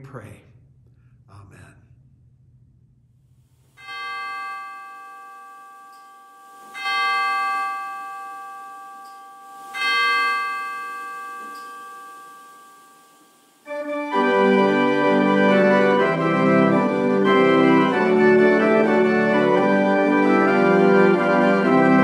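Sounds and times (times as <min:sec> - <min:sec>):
bell ringing: 0:03.8 - 0:13.8.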